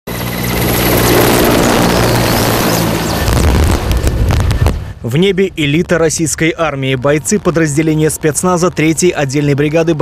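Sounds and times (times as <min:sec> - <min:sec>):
helicopter engine and rotor: 0:00.1 - 0:04.2.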